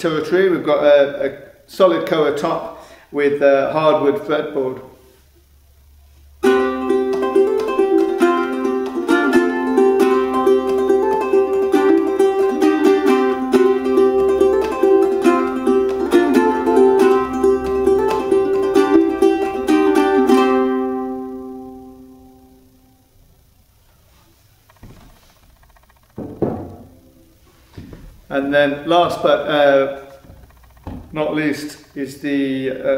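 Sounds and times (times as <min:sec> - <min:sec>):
ukulele strummed and plucked: 0:06.4 - 0:22.9.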